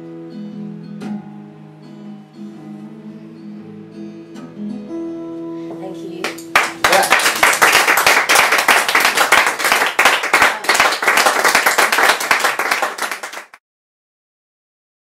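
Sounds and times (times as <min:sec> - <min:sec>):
audience clapping: 0:06.2 - 0:13.6.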